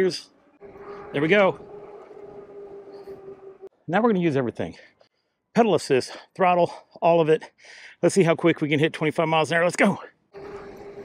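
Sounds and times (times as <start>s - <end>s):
electric bike motor whining: 0.3s - 3.7s, 10.4s - 11.0s.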